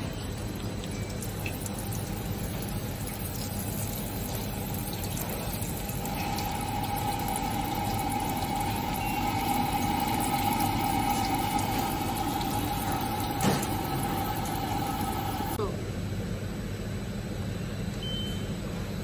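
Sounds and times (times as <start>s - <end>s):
water pump whining: 0.0s - 15.6s.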